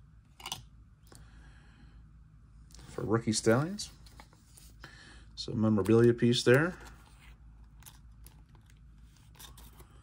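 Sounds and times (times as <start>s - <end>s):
papery rustle of cards: 5.8s - 10.0s.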